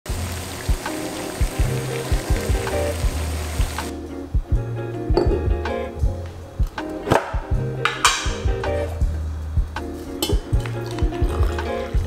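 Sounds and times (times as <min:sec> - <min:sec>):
water boiling in a saucepan: 0:00.1 - 0:03.9
background music with bass and beat: 0:00.6 - 0:12.0.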